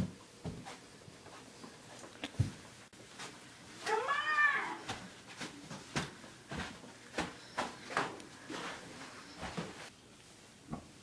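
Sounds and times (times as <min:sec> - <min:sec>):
cat meowing: 0:03.8 - 0:04.9.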